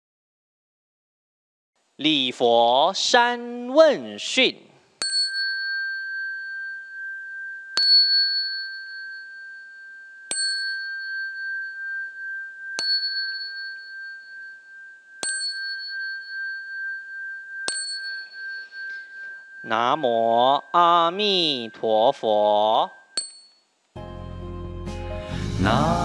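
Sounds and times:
small ritual bell ringing: 5.0s - 23.7s.

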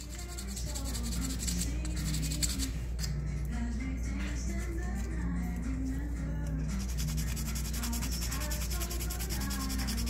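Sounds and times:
background music: 0.0s - 10.0s
sandpaper rubbing: 6.8s - 10.0s.

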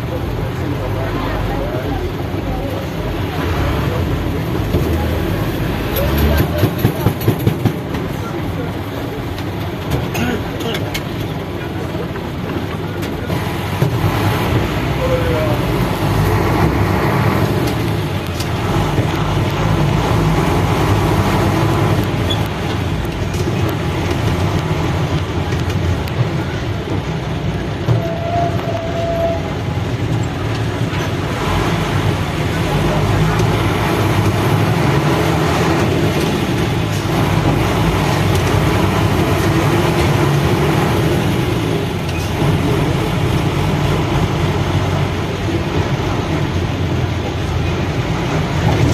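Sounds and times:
vehicle engine and road noise: 0.0s - 48.9s.

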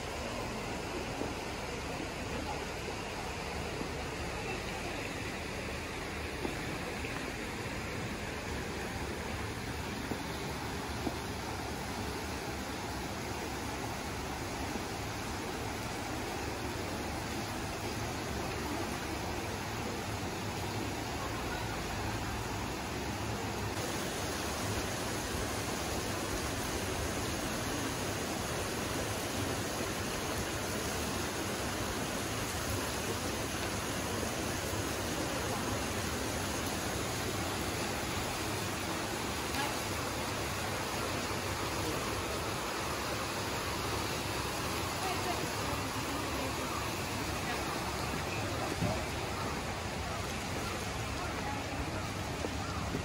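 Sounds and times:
river flowing over stones: 0.0s - 53.0s.

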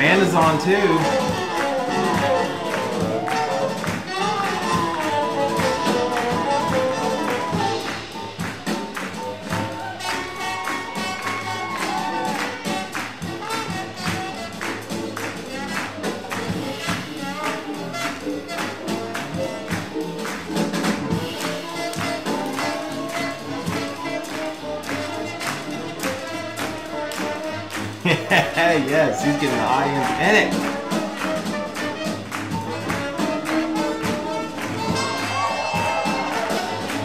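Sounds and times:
swing jazz band playing: 0.0s - 37.0s.

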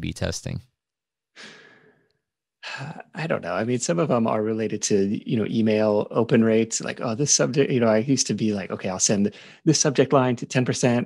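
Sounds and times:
man speaking: 0.0s - 0.6s, 2.7s - 11.0s
man sighing: 1.4s - 1.9s.

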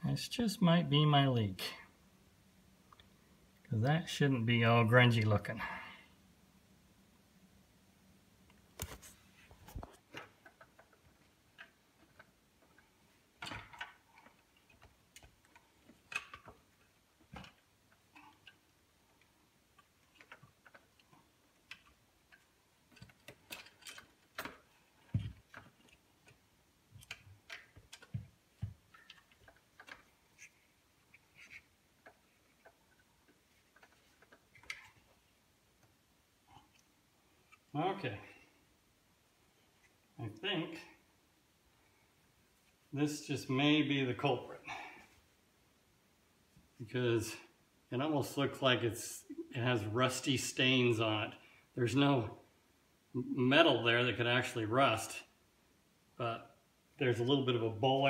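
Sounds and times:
hard plastic parts clicking and knocking: 9.7s - 18.7s, 19.8s - 35.2s.

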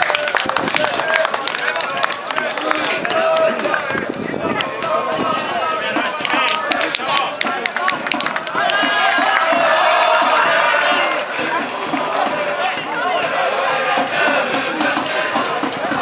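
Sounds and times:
crowd singing a chant: 0.9s - 16.0s.

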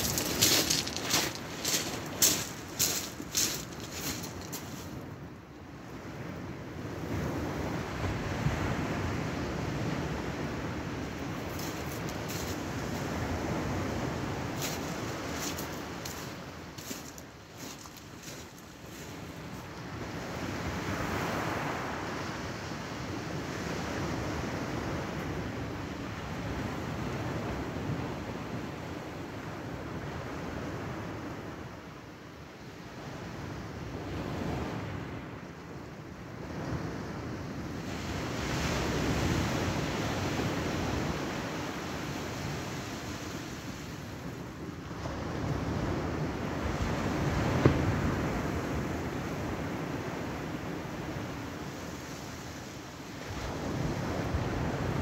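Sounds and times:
small waves washing ashore: 0.0s - 5.2s, 5.8s - 31.8s, 36.2s - 55.0s
wind buffeting microphone: 0.0s - 5.2s, 10.8s - 19.7s.

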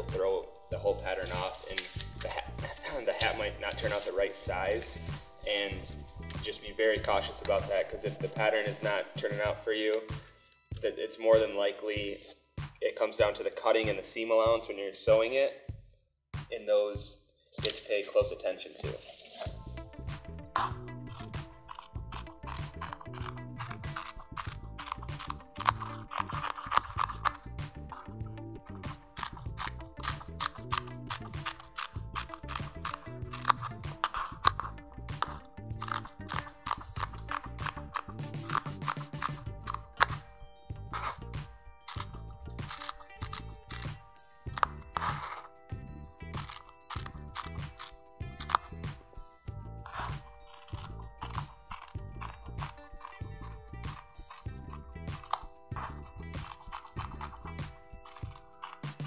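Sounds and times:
background music with steady beat: 0.0s - 59.0s
scissors cutting fabric: 1.2s - 4.4s, 20.5s - 45.6s, 46.3s - 59.0s.

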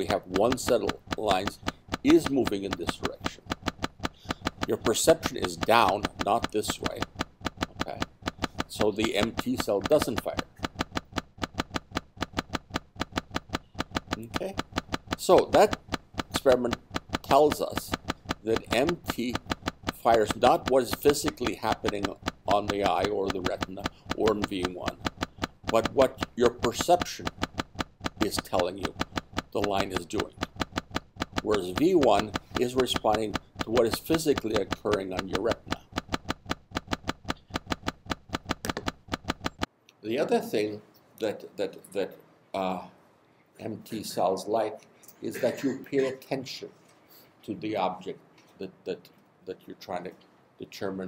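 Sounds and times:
train of sharp clicks: 0.0s - 39.7s.

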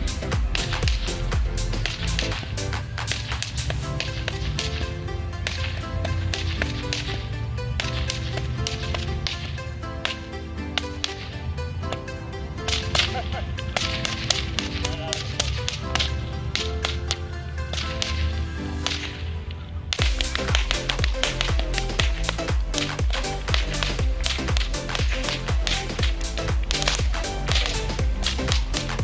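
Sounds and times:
upbeat background music: 0.0s - 29.0s
sharp whip cracks: 0.5s - 1.2s, 1.8s - 4.8s, 12.7s - 17.0s, 17.7s - 19.2s, 20.0s - 29.0s.

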